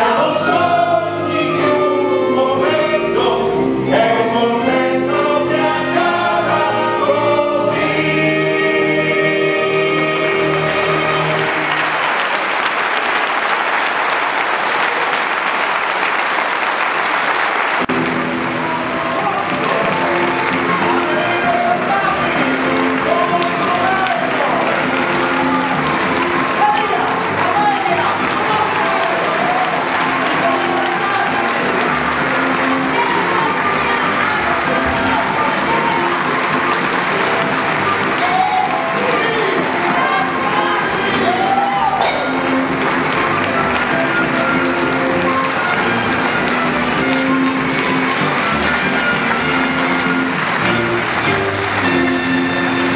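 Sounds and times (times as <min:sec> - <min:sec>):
music playing: 0:00.0 - 0:13.9, 0:17.7 - 0:52.9
audience applauding: 0:09.7 - 0:52.9.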